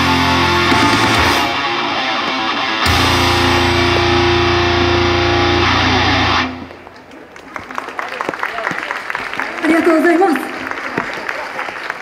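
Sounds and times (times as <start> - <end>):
pop rock song with electric guitar: 0.0 - 6.7
audience clapping: 6.6 - 12.0.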